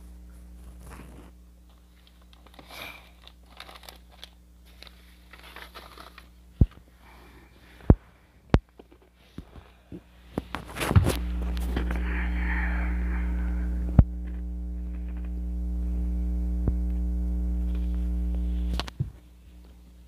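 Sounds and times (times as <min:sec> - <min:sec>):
loud electrical mains hum: 0:00.0 - 0:20.0.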